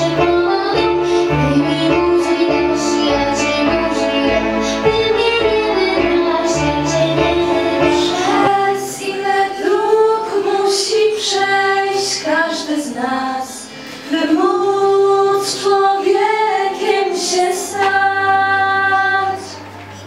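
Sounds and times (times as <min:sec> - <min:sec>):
girls singing into microphones: 0:00.0 - 0:20.0.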